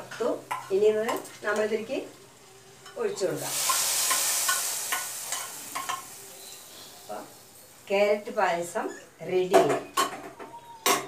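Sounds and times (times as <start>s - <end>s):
hot ghee sizzling: 0.0s - 8.9s.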